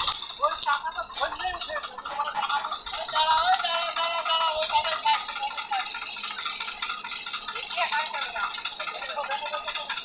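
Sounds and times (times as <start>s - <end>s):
diesel engine rattling: 0.0s - 10.0s.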